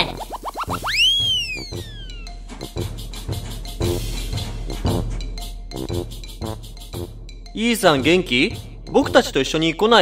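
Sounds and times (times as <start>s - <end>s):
springy cartoon boings: 0.0s - 2.4s
upbeat children's music: 0.0s - 10.0s
sliding cartoon whistle: 0.4s - 2.2s.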